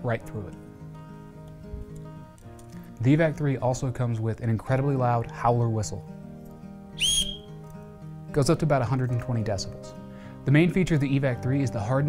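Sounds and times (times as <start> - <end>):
soft guitar instrumental music: 0.0 - 12.0.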